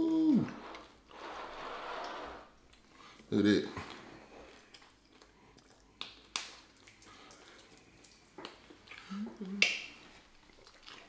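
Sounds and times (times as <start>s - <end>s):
wet mouth smacks while chewing: 3.9s - 11.0s.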